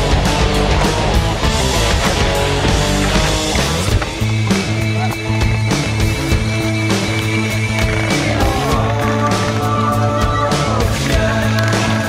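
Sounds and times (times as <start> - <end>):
music with steady drum beat: 0.0 - 12.0.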